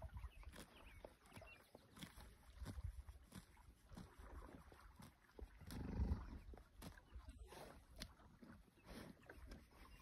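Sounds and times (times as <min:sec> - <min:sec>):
horse cropping grass: 0:00.0 - 0:10.0.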